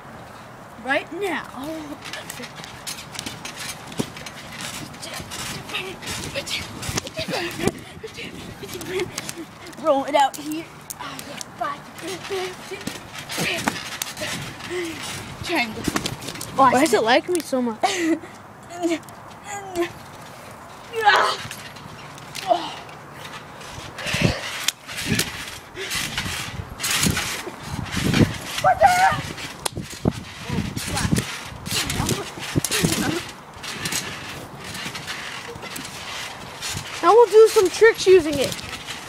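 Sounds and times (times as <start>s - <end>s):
feet bouncing on trampoline: 1.1s - 39.0s
child laughing: 7.0s - 9.8s.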